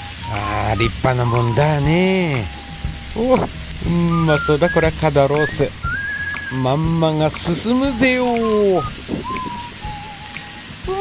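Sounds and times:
meat sizzling on a grill: 0.0s - 11.0s
man humming mmm: 0.2s - 5.0s, 7.9s - 11.0s.

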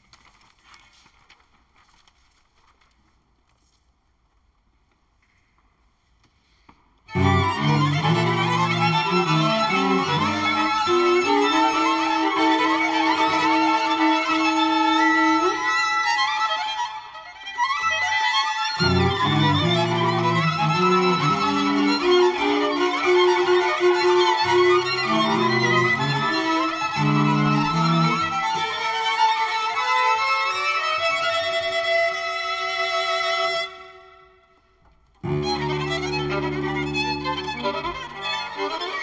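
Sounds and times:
string quartet playing chords: 7.1s - 15.4s, 18.8s - 28.9s, 35.2s - 39.0s.

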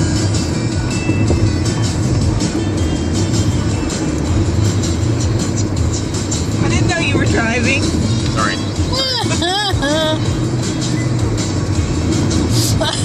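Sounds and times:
engine and road noise: 0.0s - 13.0s
music on car stereo: 0.0s - 13.0s.

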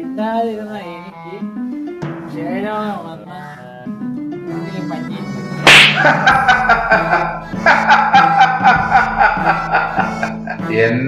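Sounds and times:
background music: 0.0s - 11.0s
hand slapping a head: 5.7s - 6.3s.

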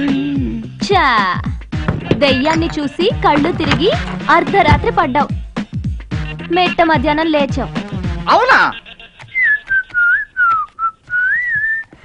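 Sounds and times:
person whistling a tune: 9.4s - 12.0s.

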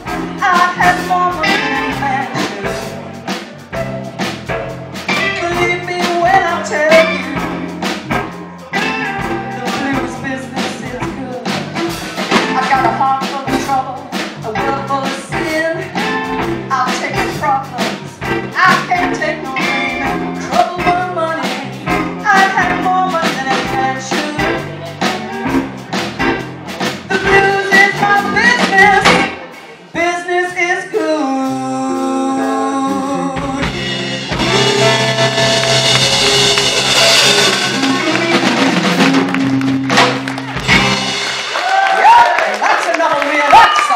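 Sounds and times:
electric guitars: 0.0s - 29.8s, 31.9s - 42.6s
drum kit: 0.0s - 29.9s, 31.4s - 43.9s
woman singing: 0.4s - 3.0s, 5.1s - 7.7s, 9.5s - 11.7s, 12.4s - 24.8s, 27.1s - 35.8s, 37.6s - 40.1s.

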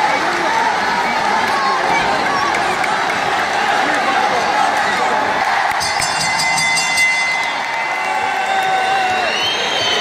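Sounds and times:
crowd cheering: 0.0s - 10.0s
ring bell rung rapidly: 5.8s - 8.6s.

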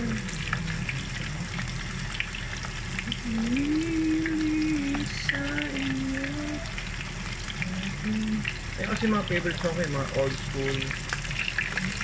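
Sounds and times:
meat frying in oil: 0.0s - 12.0s.

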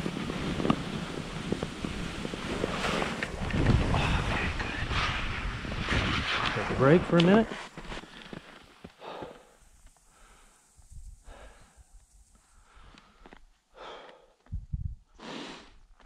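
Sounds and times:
person breathing softly: 8.0s - 14.5s.

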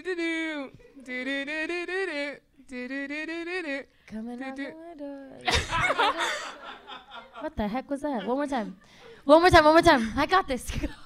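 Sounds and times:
woman singing syllables: 0.0s - 5.5s.

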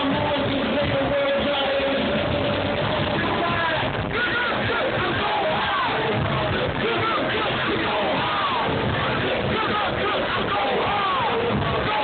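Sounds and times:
loud hip-hop music through pa: 0.0s - 12.0s.

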